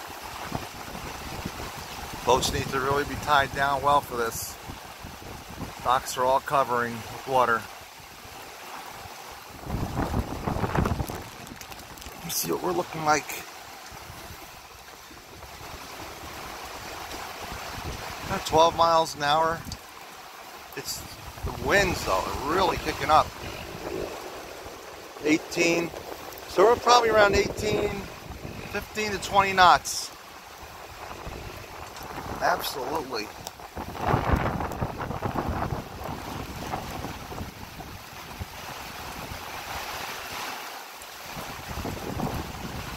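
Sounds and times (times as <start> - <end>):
wind buffeting microphone: 0.0 - 6.0, 8.0 - 12.3, 13.9 - 18.5, 21.0 - 29.7, 30.5 - 40.0, 41.2 - 42.9
rain: 0.0 - 42.9
storm wind rushing: 9.5 - 12.1, 21.0 - 29.7, 30.6 - 39.6, 41.3 - 42.9.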